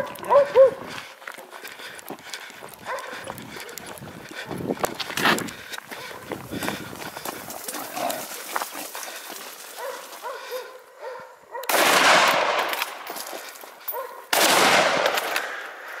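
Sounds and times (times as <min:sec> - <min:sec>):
dogs yelping and barking: 0:00.0 - 0:01.0, 0:02.7 - 0:04.0, 0:07.5 - 0:11.7, 0:13.8 - 0:14.3
gunshots with long echo: 0:11.7 - 0:13.1, 0:14.3 - 0:15.9.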